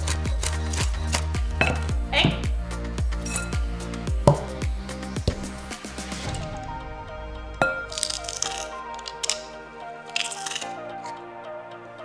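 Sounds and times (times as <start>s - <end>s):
background music with beat: 0.0s - 12.0s
knife chopping on wooden board: 4.3s - 4.6s.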